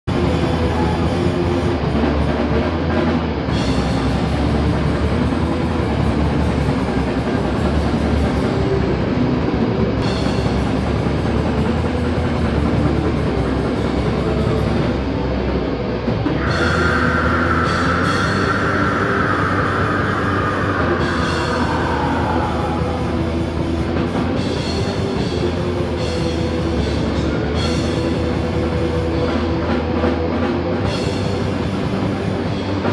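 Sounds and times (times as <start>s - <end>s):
heavy metal band playing live: 0.1s - 32.9s
high held note sliding down: 16.4s - 23.8s.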